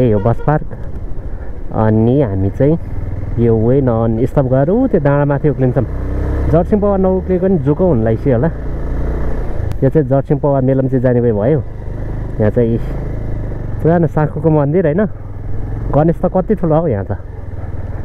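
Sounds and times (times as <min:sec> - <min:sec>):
person talking: 0:00.0 - 0:00.8
motorcycle engine running: 0:00.0 - 0:18.0.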